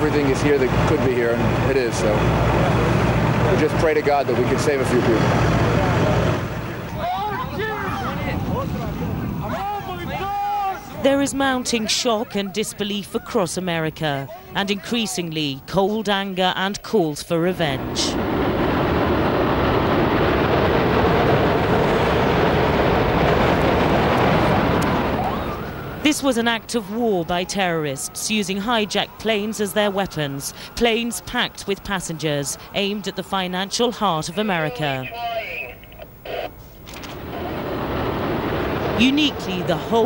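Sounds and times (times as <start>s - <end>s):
distant jet roar and explosion rumble: 0.0s - 11.9s, 17.5s - 34.8s, 35.8s - 40.0s.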